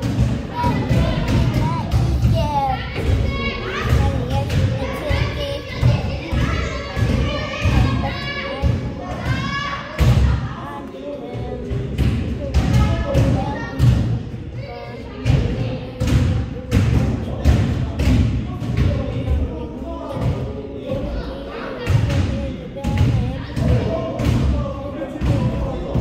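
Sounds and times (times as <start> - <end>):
children's voices: 0.0 - 26.0.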